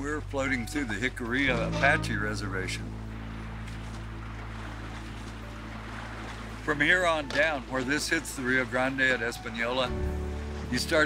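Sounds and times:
low steady hum: 0.0s - 8.5s
river water flowing: 0.0s - 11.0s.

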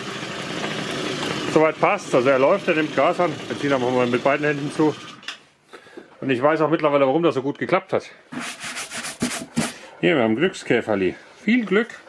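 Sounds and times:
gloved hand rubbing plastic: 8.3s - 9.8s.

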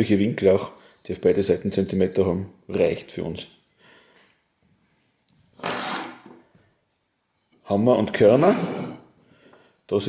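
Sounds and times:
scrape across wooden workbench: 8.3s - 9.1s.

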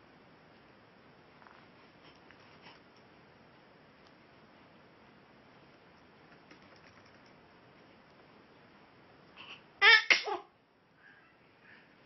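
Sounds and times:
baby sneezing: 9.8s - 10.5s.

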